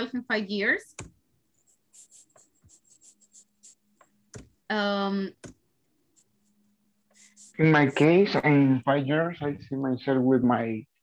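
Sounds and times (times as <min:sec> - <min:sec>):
faint low hum: 0:01.6 - 0:10.9.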